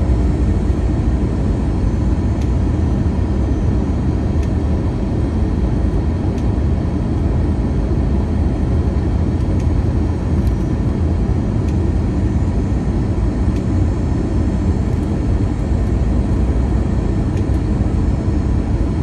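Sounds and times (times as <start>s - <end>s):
airplane cabin engine rumble: 0.0s - 19.0s
faint steady hum: 0.0s - 19.0s.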